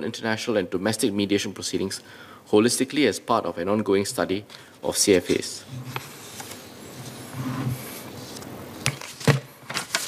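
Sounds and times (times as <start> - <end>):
paper rustling and sliding: 5.1 - 10.0.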